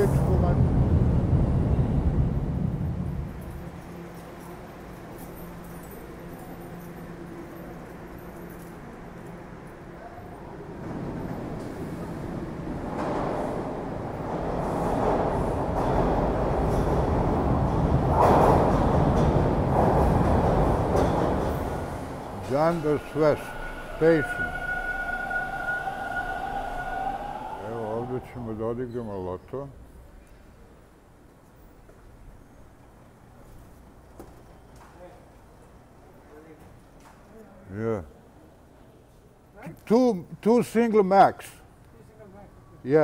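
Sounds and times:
subway train rumbling: 0.0 - 34.6.

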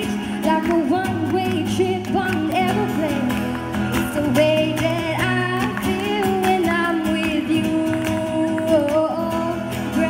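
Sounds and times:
acoustic guitar strumming: 0.0 - 10.0
woman singing: 0.0 - 10.0.

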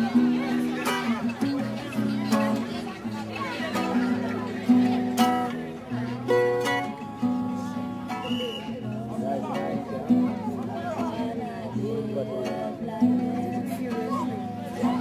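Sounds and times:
acoustic guitar strumming: 0.0 - 15.0
people talking: 0.0 - 15.0.

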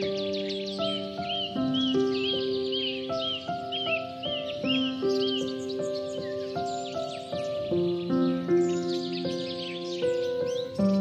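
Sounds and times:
bird chirping: 0.0 - 11.0
slow gentle melodic music: 0.0 - 11.0.

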